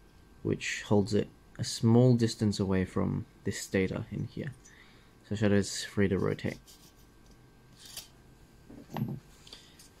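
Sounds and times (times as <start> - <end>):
metal parts scraping: 7.8 - 8.1.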